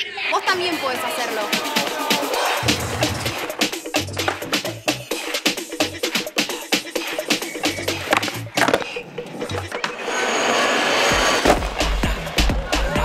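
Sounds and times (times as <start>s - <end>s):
music with deep bass beat: 2.0s - 8.6s, 11.4s - 13.0s
skateboard wheels rolling: 2.6s - 13.0s
skateboard clacks: 3.4s - 6.4s, 7.2s - 10.1s, 11.2s - 13.0s.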